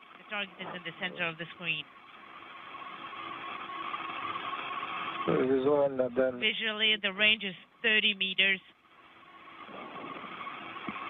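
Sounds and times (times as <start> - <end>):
radio channel hiss: 0.1 - 8.5, 9.5 - 11.0
man's voice over radio: 5.3 - 6.5.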